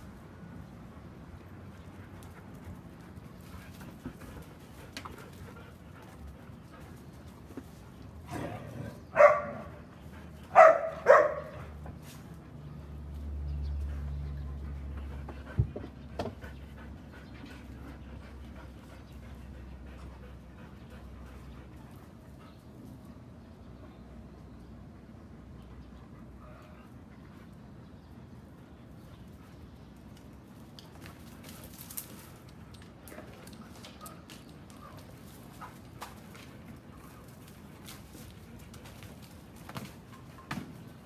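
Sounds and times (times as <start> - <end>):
dog panting: 13.8 - 22.9.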